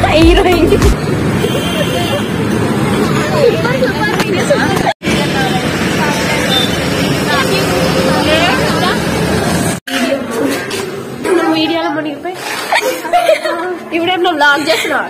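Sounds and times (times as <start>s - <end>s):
people talking: 0.0s - 1.0s, 3.1s - 9.2s
traffic: 0.0s - 15.0s.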